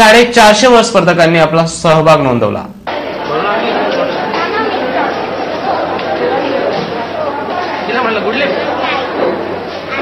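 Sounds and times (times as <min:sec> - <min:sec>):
crowd chatter: 0:02.8 - 0:10.0.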